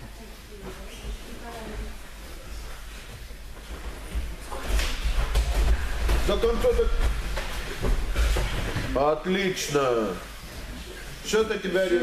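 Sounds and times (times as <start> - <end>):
faint voices in a hall: 0.0 - 12.0
feet shuffling on mat: 0.1 - 12.0
bodies and jackets bumping: 3.4 - 9.2.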